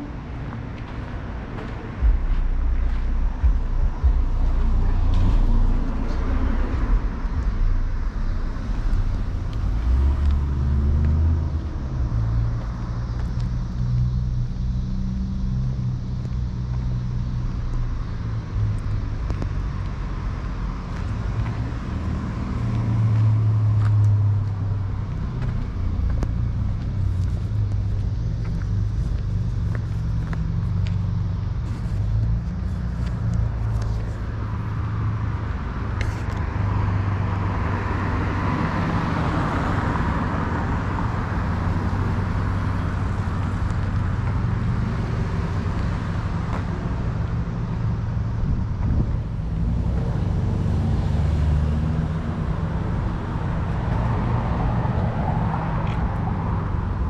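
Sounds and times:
low rumble of car engines: 0.0 - 57.0.

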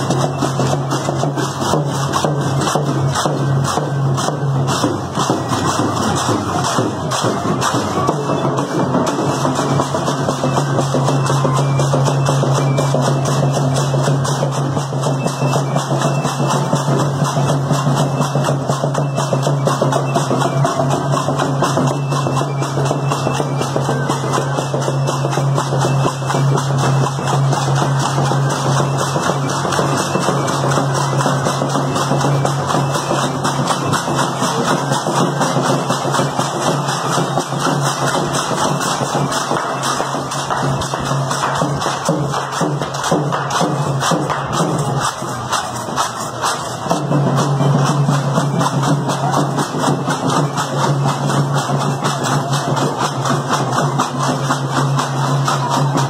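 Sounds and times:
dance music with drum beat: 0.0 - 56.0.

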